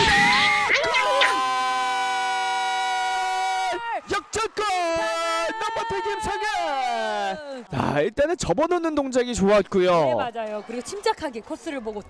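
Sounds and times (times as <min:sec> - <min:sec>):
sports commentator shouting: 0:03.5 - 0:07.7.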